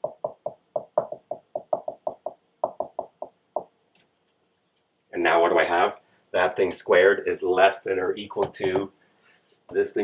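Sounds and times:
marker squeaking on whiteboard: 1.9s - 5.1s.

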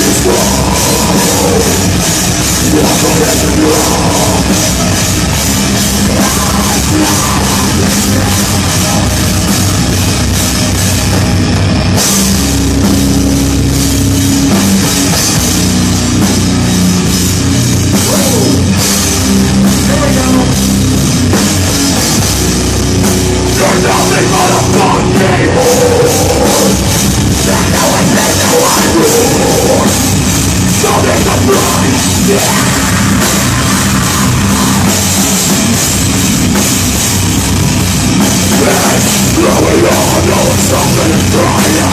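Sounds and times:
bass guitar: 0.0s - 41.9s
drum kit with cymbal hits: 0.0s - 41.9s
electric guitars: 0.0s - 41.9s
metal band playing live: 0.0s - 41.9s.

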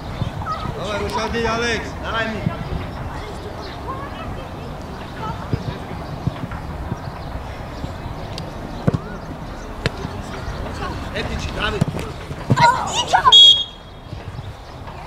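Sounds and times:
children shouting: 0.0s - 1.8s, 12.4s - 13.9s
distant shouting: 0.0s - 14.1s.

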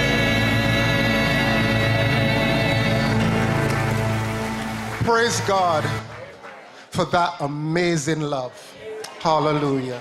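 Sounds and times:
congregation applauding: 1.2s - 7.2s.

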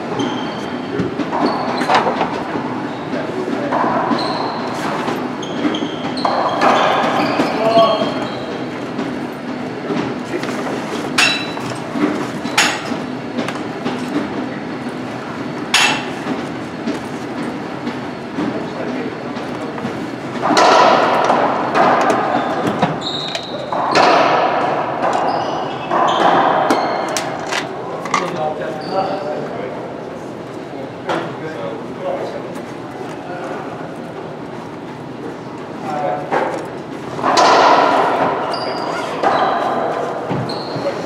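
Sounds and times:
racquetball hits echoing: 3.6s - 9.3s, 20.4s - 27.8s, 37.2s - 40.7s.

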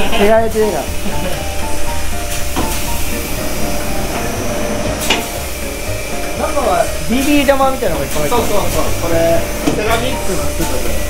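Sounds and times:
polishing machine humming: 0.0s - 11.0s.

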